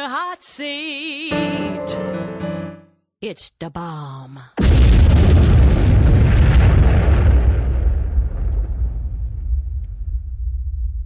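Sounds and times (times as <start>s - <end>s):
explosion rumble: 4.6s - 11.0s.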